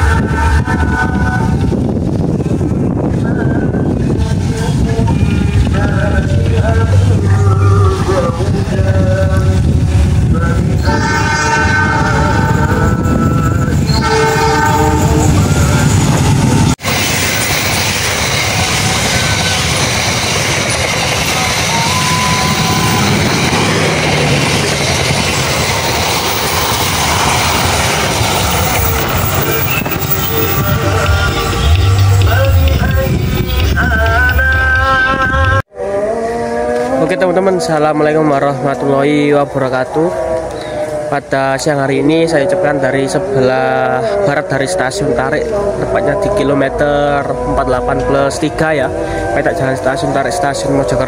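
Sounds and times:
locomotive engine rumble: 0.0s - 35.6s
train coaches clattering on rails: 0.8s - 35.6s
locomotive horn blasts: 10.7s - 16.8s, 21.6s - 24.5s.

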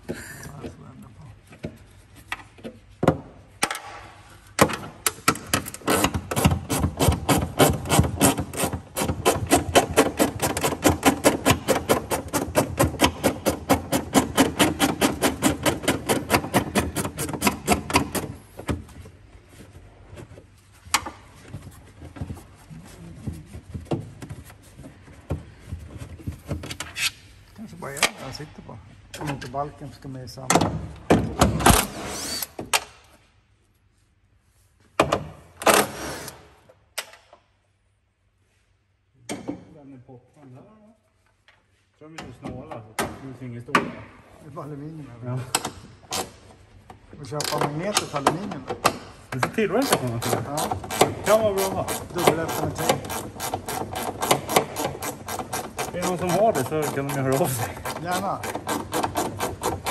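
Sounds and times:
gloved hands rubbing sheet metal: 5.7s - 18.6s, 49.6s - 59.9s.

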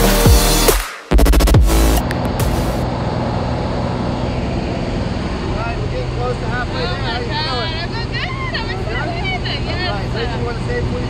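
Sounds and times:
plane engine and propeller drone: 2.0s - 11.0s.

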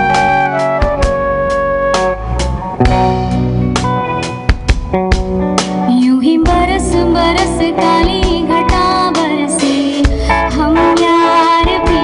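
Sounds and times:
electric guitars: 0.0s - 12.0s
live band playing: 0.0s - 12.0s
drum kit hits: 2.0s - 5.9s.

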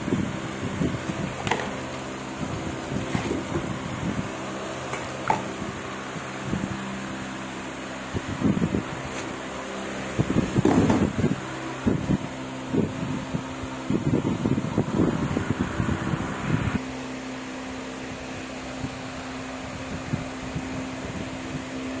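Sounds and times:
steady low hum: 0.0s - 22.0s
metal jars knocking on concrete: 4.9s - 5.6s.

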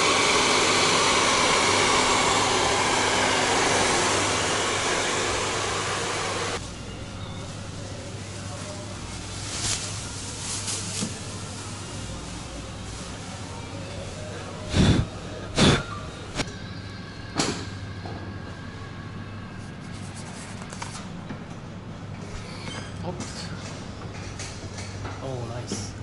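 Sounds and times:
hair dryer blowing: 0.0s - 6.6s.

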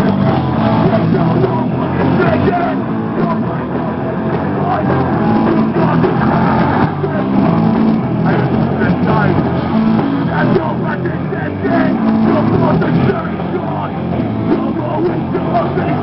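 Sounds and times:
live punk rock band: 0.0s - 16.0s
shouted vocals: 0.0s - 16.0s.

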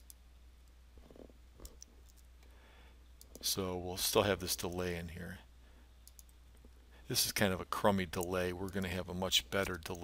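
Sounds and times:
faint keyboard and mouse clicks: 0.0s - 2.5s, 3.2s - 3.6s, 6.0s - 6.8s, 8.1s - 9.0s.

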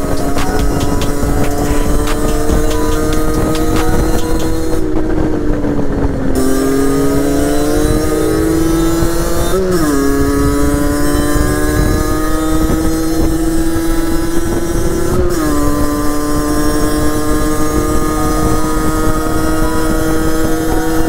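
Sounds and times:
two-stroke engine revving: 0.0s - 21.0s.

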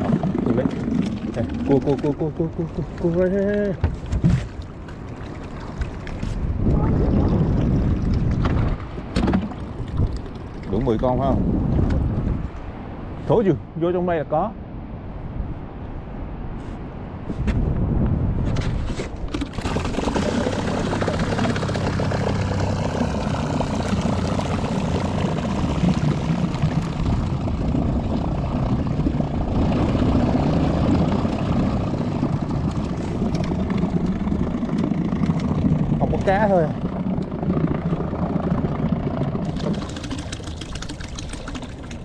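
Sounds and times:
knocks against boat: 3.8s - 4.6s
electric trolling motor running: 19.6s - 26.7s, 29.5s - 40.4s.

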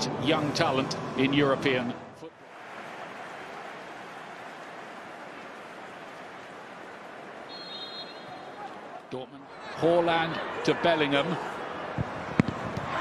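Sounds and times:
stadium crowd noise: 0.0s - 13.0s
referee's whistle: 7.5s - 8.6s.

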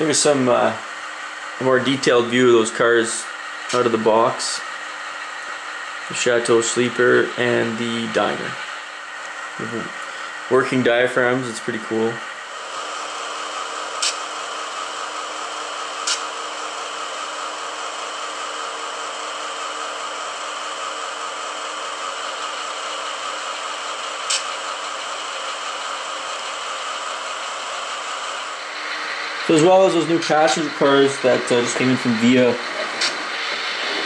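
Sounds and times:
steady mechanical hum: 0.0s - 34.0s.

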